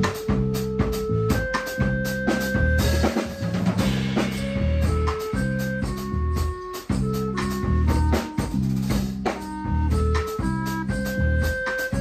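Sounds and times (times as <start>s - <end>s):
bass: 0.0s - 12.0s
clarinet holding notes: 0.0s - 12.0s
drum kit: 0.0s - 12.0s.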